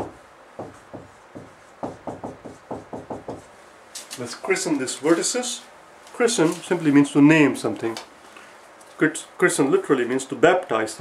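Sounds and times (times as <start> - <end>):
marker writing on whiteboard: 0.0 - 3.6.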